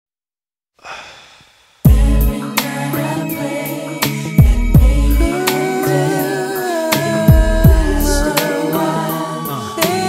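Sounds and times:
soft breathy hiss: 0.8 - 1.9
r and b song with bass and chords: 1.8 - 10.0.

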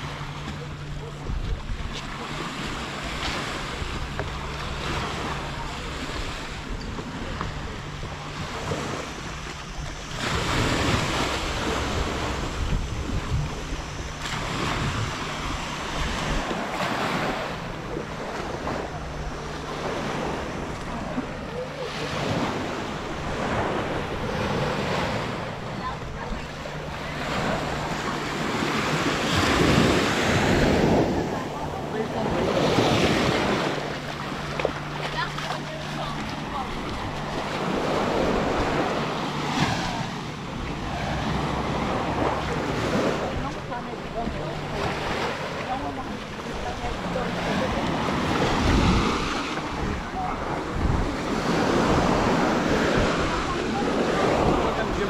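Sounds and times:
small waves washing onto sand: 0.0 - 55.0
wind buffeting microphone: 0.0 - 55.0.

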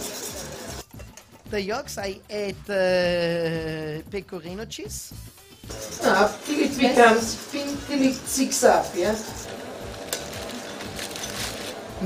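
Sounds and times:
kitchen utensils scraping: 0.0 - 1.5, 5.7 - 12.0.

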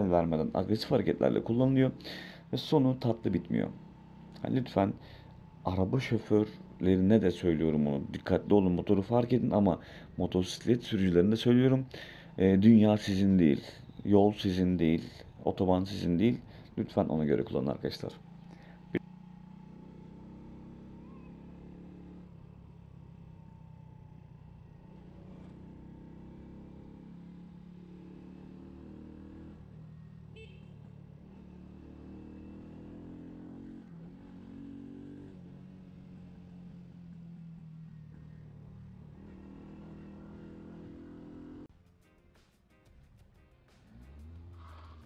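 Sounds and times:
scooter engine running: 18.2 - 26.8.

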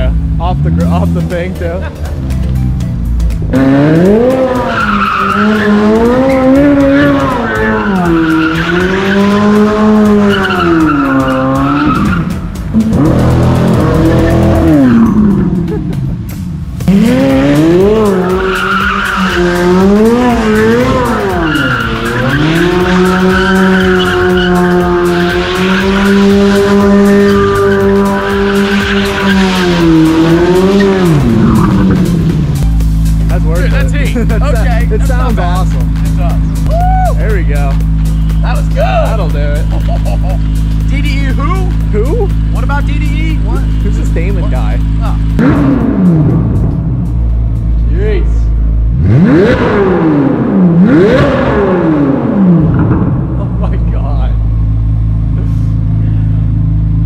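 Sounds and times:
car engine revving: 0.0 - 57.0
tyres screeching: 2.2 - 16.1, 16.8 - 45.8.

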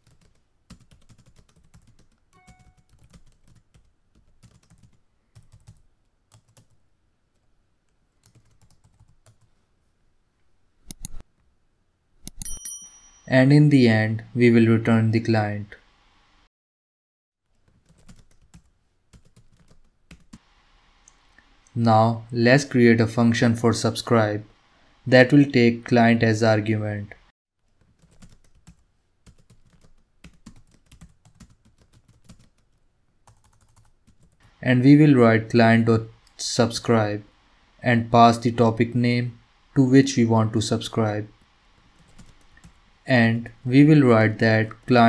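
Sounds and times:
computer keyboard typing: 0.0 - 6.8, 8.2 - 9.5, 17.8 - 20.4, 27.9 - 34.5, 41.8 - 42.8
bright bell-like ding: 12.4 - 13.3.

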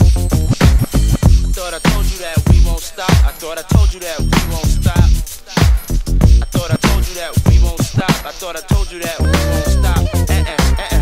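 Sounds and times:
heavy bass drum: 0.0 - 11.0
rapping over a beat: 1.2 - 11.0.

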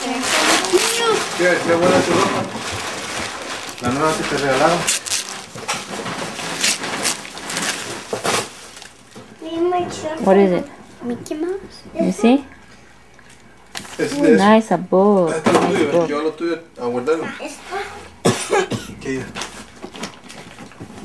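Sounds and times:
people talking: 0.0 - 2.4
wrapping paper tearing: 0.0 - 9.2.

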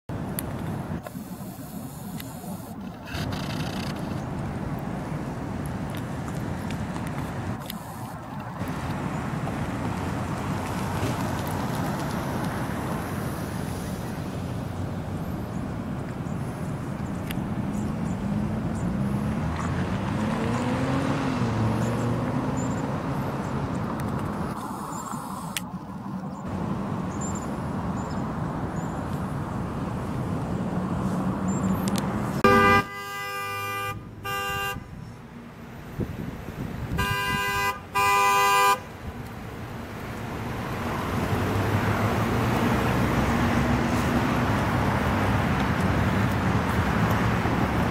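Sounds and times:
bicycle riding noise: 0.4 - 20.6
car horn blasts: 32.4 - 35.0, 36.9 - 38.9.

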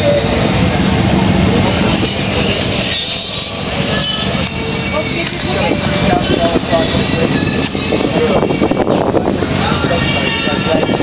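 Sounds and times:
motorcycle engines rumbling: 0.0 - 11.0.

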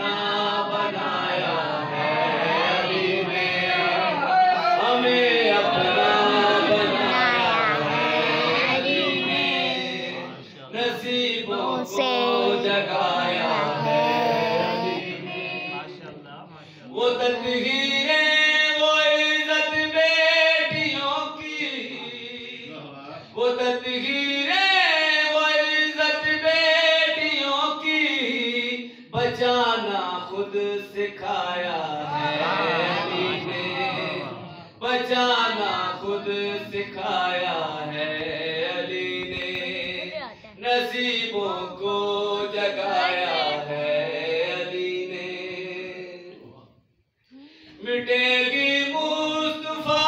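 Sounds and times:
man chanting into microphone: 4.2 - 46.7, 47.8 - 50.0.

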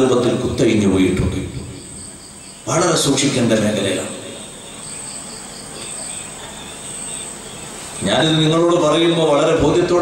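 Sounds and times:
pulsed cricket chirp: 0.0 - 9.9
crickets trilling: 0.0 - 10.0.

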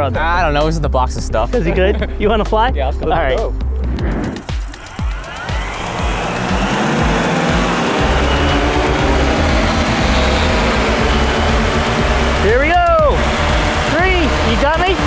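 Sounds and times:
background music with steady beat: 0.0 - 15.0
electric motors and propellers whirring: 4.2 - 15.0.

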